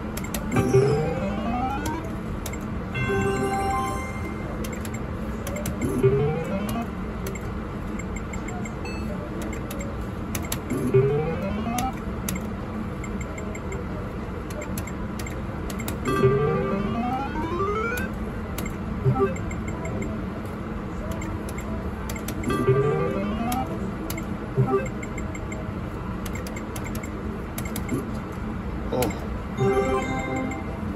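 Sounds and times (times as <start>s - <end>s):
casino background: 0.0s - 6.8s, 29.0s - 30.9s.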